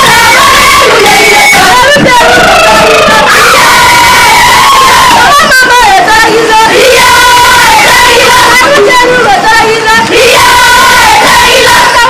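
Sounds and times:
group singing and shouting: 0.0s - 12.0s
long held high call: 0.0s - 12.0s.

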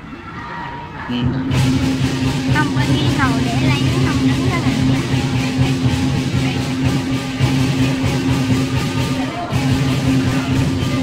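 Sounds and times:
large crowd noise: 0.0s - 11.0s
drum and cymbals playing: 1.1s - 11.0s.

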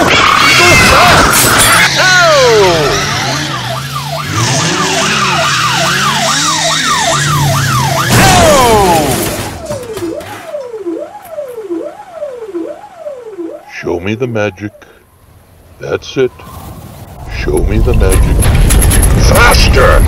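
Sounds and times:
electronic siren yelping and wailing: 0.0s - 14.8s.

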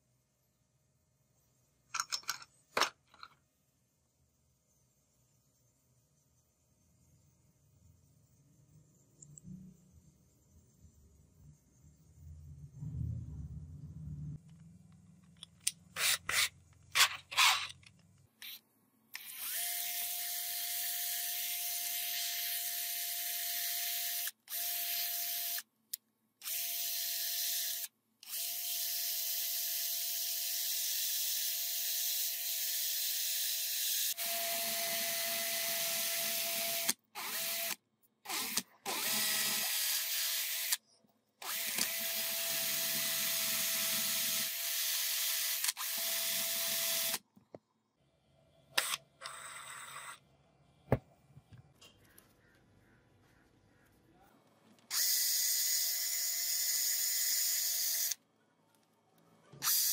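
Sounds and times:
cordless drill motor whine: 19.2s - 25.6s, 26.4s - 40.8s, 41.4s - 47.2s, 54.9s - 58.2s.

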